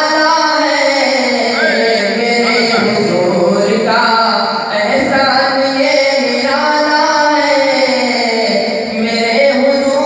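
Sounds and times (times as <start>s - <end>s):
man singing into microphone: 0.0s - 10.0s.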